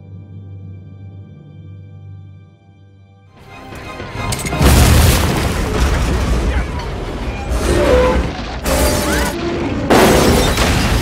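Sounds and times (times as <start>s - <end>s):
film score music: 0.0s - 10.1s.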